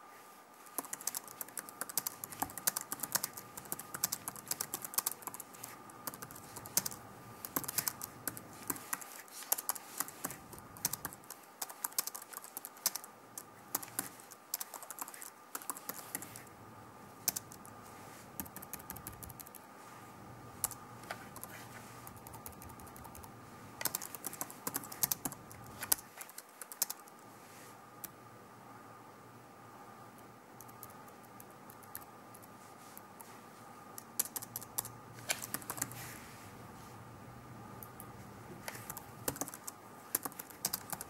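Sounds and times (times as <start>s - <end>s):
typing on a computer keyboard: 0.6s - 16.5s, 17.2s - 17.8s, 18.4s - 19.6s, 20.6s - 27.2s, 30.6s - 32.5s, 34.0s - 36.0s, 38.7s - 41.0s.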